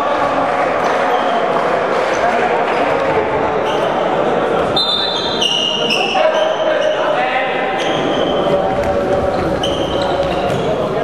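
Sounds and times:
shoes squeaking on floor: 0.8 - 11.0.

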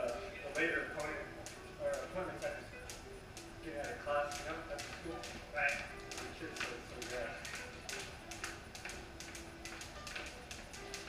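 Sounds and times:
jump ropes slapping concrete: 4.0 - 11.0.

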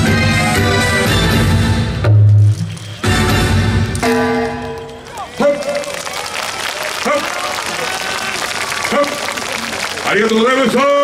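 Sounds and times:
crowd applauding: 2.6 - 3.5, 4.4 - 11.0.

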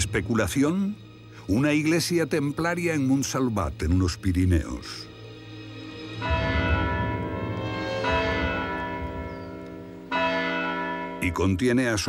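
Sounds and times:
church bells ringing: 5.8 - 12.0.

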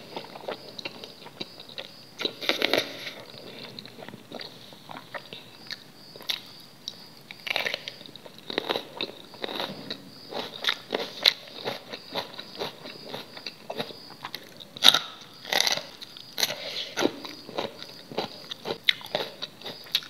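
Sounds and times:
chewing and biting food: 0.0 - 20.0.

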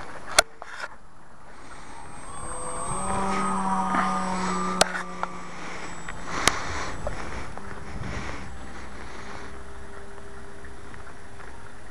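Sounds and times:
electric motor whining overhead: 1.2 - 11.9.

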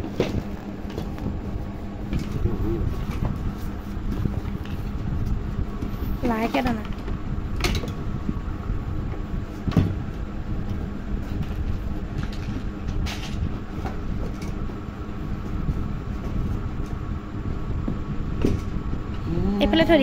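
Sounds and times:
knocks and rustles of handling: 0.0 - 8.0
low rumbling hum: 0.0 - 20.0.

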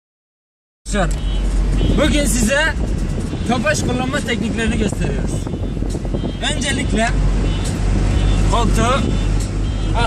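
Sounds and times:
car running and road noise: 0.8 - 10.0
man talking: 1.9 - 2.8, 3.4 - 5.5, 6.4 - 7.2.

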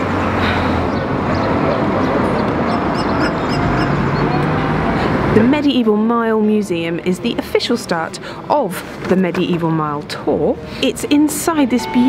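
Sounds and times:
low engine hum: 0.0 - 6.1
steady rushing outdoor noise: 0.0 - 9.2
high bird chirps: 2.4 - 4.4.

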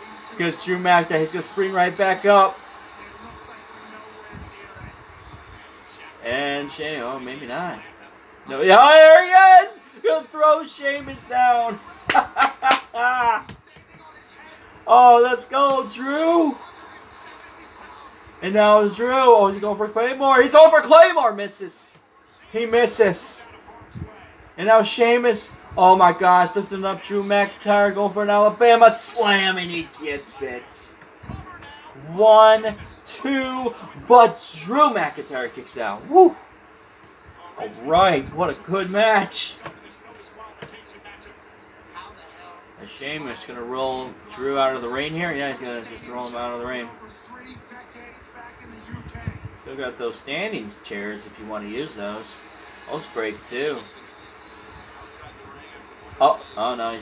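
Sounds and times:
low room noise: 0.0 - 57.0
man clapping hands: 12.0 - 14.0
man laughing excitedly: 12.1 - 13.5.

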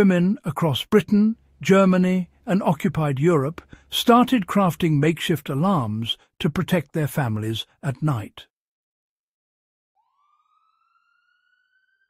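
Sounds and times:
faint siren winding up: 10.0 - 12.0.

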